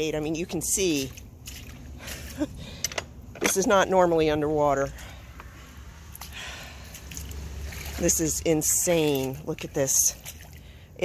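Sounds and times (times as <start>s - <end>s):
boots sloshing through water: 0.1s - 2.8s, 5.2s - 11.0s.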